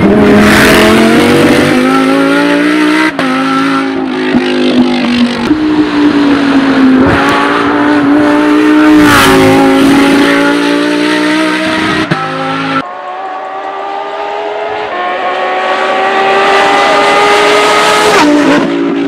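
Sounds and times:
racing car engine at high revs: 0:00.0 - 0:19.0.

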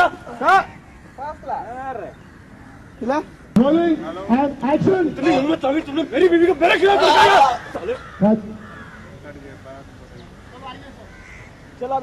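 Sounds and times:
crows cawing faintly: 0:02.2 - 0:03.4, 0:06.6 - 0:09.6, 0:10.2 - 0:12.0
man shouting or grunting: 0:06.6 - 0:07.6.

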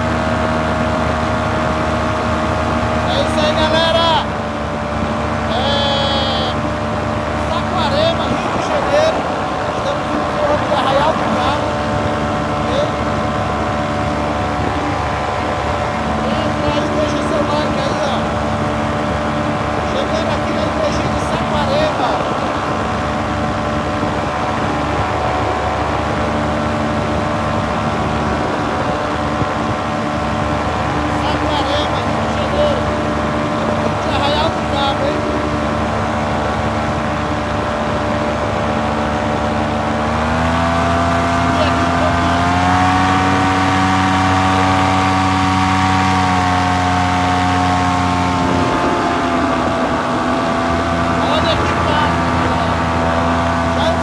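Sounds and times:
paraglider engine running: 0:00.0 - 0:54.0
person calling out: 0:05.5 - 0:06.7.

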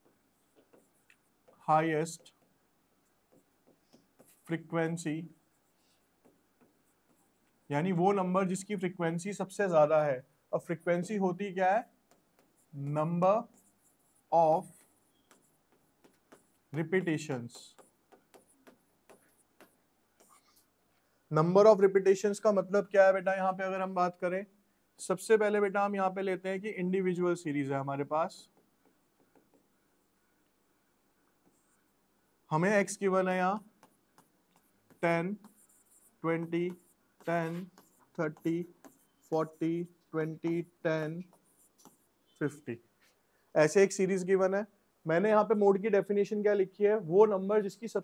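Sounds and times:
pen tapping and scraping on board: 0:00.0 - 0:08.6, 0:10.7 - 0:20.6, 0:28.3 - 0:29.8, 0:31.3 - 0:32.0, 0:32.6 - 0:42.4
man speaking: 0:12.7 - 0:13.6, 0:16.7 - 0:17.8, 0:32.5 - 0:33.7, 0:35.0 - 0:35.5, 0:36.2 - 0:41.4, 0:42.4 - 0:42.8.

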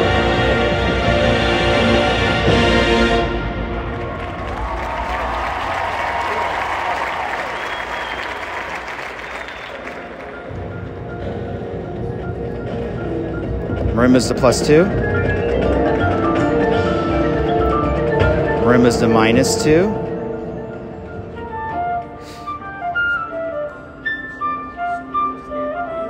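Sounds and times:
marching band playing: 0:00.0 - 0:22.9
crowd applauding: 0:03.6 - 0:11.0
marimba: 0:10.3 - 0:23.2.

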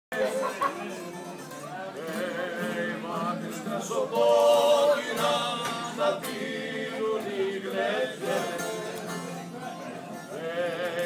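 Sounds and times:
bouzouki music: 0:00.1 - 0:11.0
guitar: 0:00.1 - 0:11.0
voices: 0:00.1 - 0:11.0.

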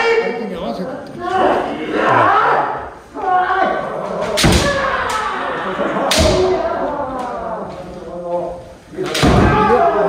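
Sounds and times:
voices ringing through hall: 0:00.0 - 0:10.0.

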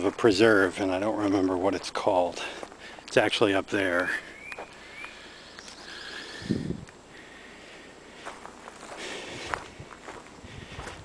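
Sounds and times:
footsteps on gravel: 0:00.0 - 0:05.9, 0:08.1 - 0:11.0
bird chirps: 0:04.1 - 0:06.6.

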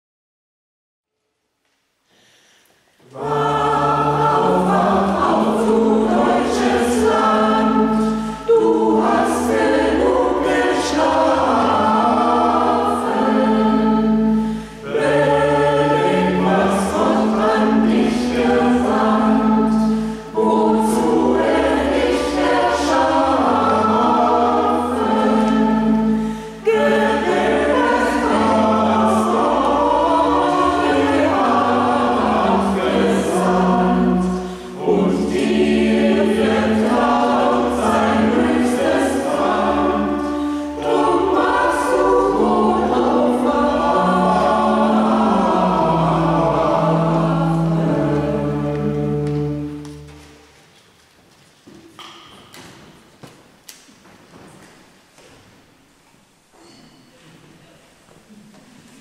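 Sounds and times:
singers breathing: 0:02.0 - 0:03.0, 0:08.0 - 0:08.5, 0:14.3 - 0:14.9, 0:19.9 - 0:20.4, 0:26.1 - 0:26.7
choir singing: 0:03.0 - 0:50.6.

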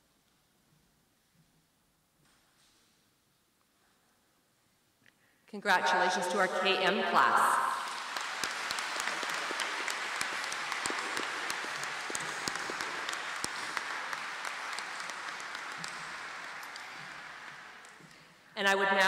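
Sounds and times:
audience applause in a large hall: 0:07.5 - 0:18.5.

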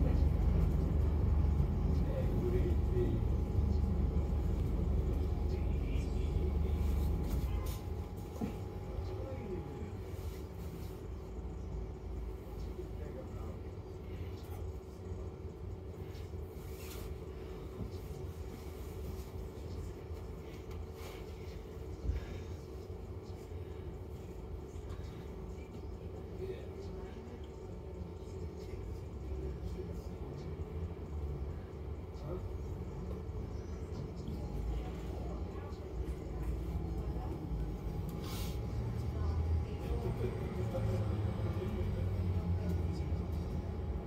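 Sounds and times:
bus engine rumble: 0:00.0 - 0:44.0.

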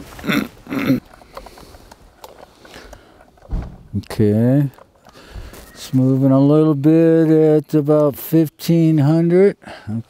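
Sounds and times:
man coughing: 0:00.2 - 0:01.0.

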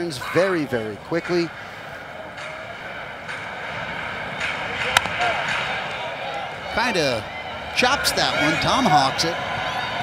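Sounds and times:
crowd noise: 0:00.0 - 0:10.0
bat cracking ball: 0:04.8 - 0:05.6.

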